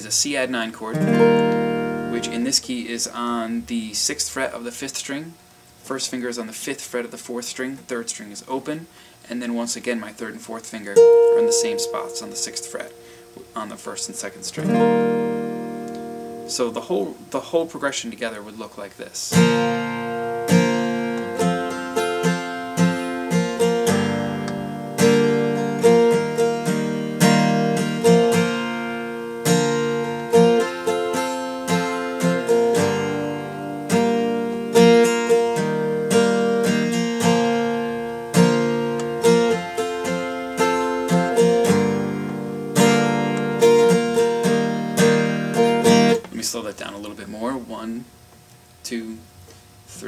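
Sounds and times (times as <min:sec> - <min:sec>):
acoustic guitar strumming chords: 0:00.0 - 0:04.9, 0:09.5 - 0:18.6, 0:19.3 - 0:47.0.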